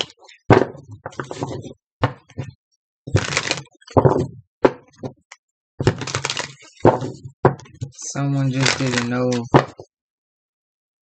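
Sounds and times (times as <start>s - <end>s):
cards being shuffled: 3.1s - 4.2s, 5.8s - 9.8s.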